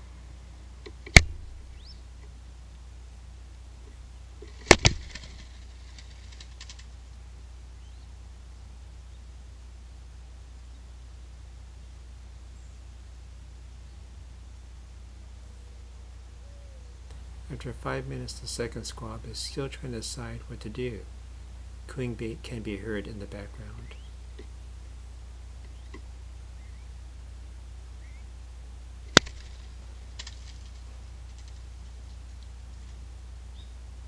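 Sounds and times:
low hum: 0:00.0 - 0:34.0
wings fluttering: 0:03.9 - 0:07.1, 0:29.1 - 0:33.1.

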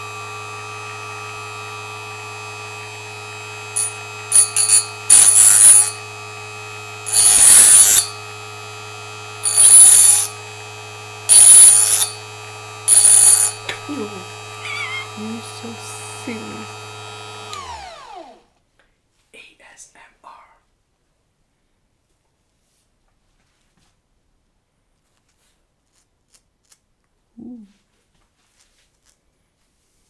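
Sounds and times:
electric sharpener motor hum: 0:00.0 - 0:18.5
metal grinding on wheel: 0:03.7 - 0:06.2, 0:07.0 - 0:08.3, 0:09.4 - 0:10.4, 0:11.2 - 0:16.6.

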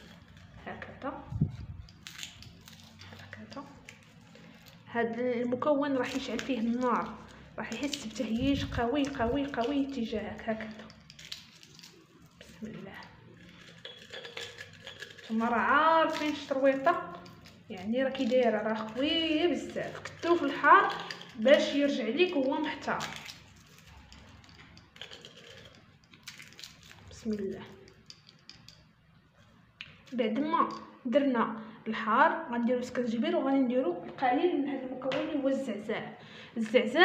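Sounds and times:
fingers crumbling chili flakes: 0:01.4 - 0:04.8, 0:06.0 - 0:28.8.

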